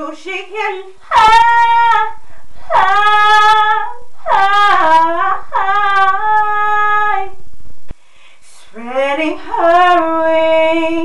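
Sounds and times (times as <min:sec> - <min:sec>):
woman singing a capella: 0:00.0 - 0:07.4, 0:08.4 - 0:11.0.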